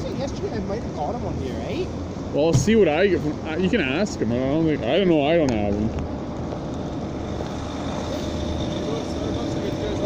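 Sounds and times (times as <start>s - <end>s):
traffic: 0.0s - 10.0s.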